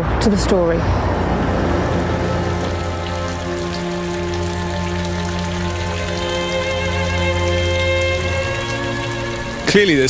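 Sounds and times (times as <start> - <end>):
deep steady drone: 0.0 - 10.0
sustained background music: 0.3 - 10.0.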